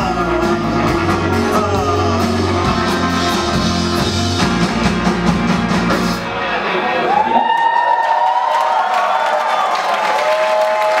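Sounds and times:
crowd cheering and applauding: 6.8 - 11.0.

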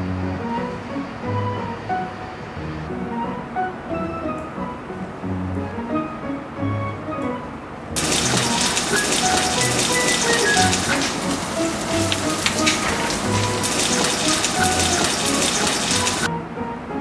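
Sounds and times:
patties sizzling in oil: 8.0 - 16.3.

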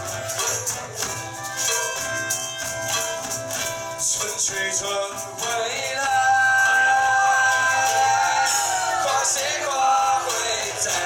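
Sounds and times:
maracas shaking: 0.0 - 11.0
strummed acoustic guitar: 0.0 - 11.0.

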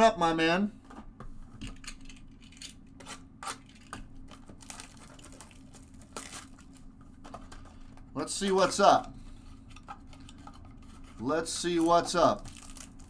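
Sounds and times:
foil wrapper crinkling and tearing: 3.5 - 6.9, 11.5 - 13.0.

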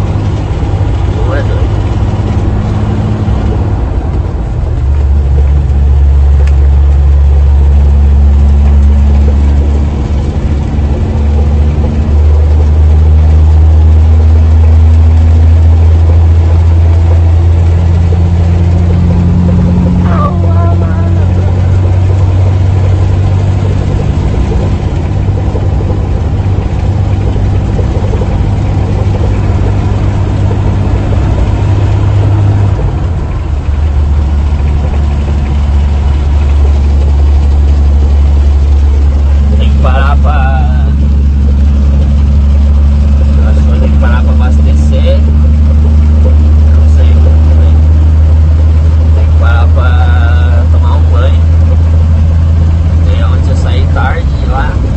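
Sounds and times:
truck diesel engine droning: 0.0 - 54.9.

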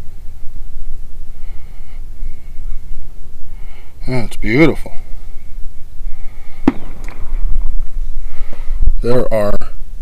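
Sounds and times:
low rough rumbling on microphone: 4.9 - 10.0
sharp knock: 6.6 - 7.2.

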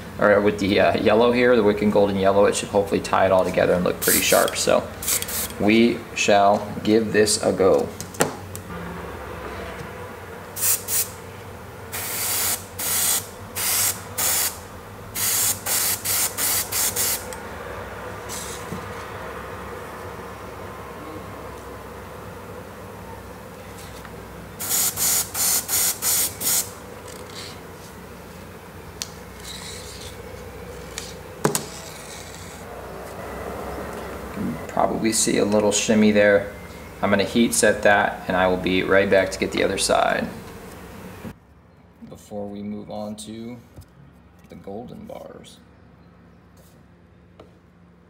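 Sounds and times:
steady low hum: 0.0 - 44.1
airbrush spraying in hissing bursts: 3.9 - 5.6, 10.5 - 11.3, 11.9 - 17.4, 18.2 - 19.1, 23.7 - 28.6.

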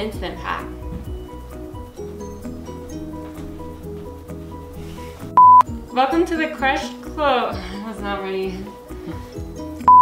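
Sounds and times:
background music: 0.0 - 10.0
loud electronic beep: 5.4 - 5.6.

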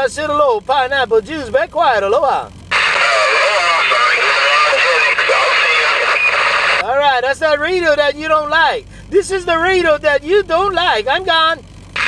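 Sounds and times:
radio static hiss: 2.7 - 6.8
voice over radio speaker: 2.7 - 7.1.

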